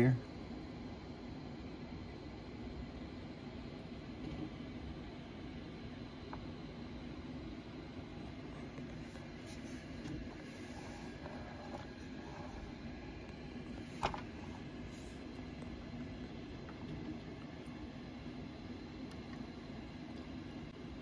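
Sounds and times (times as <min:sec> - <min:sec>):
low room noise rumble: 0:00.0 - 0:21.0.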